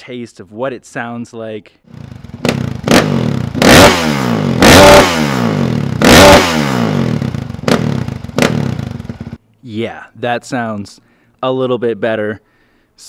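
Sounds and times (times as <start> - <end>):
dirt bike engine revving: 1.9 - 9.4.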